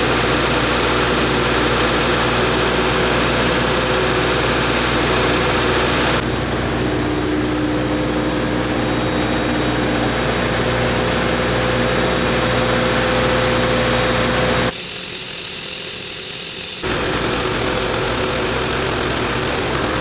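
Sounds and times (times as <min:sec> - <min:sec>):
diesel engine idling: 0:16.8 - 0:20.0.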